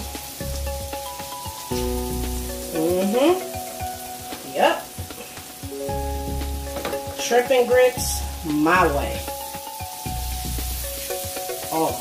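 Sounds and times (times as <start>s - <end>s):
food sizzling on griddle pan: 0.0s - 12.0s.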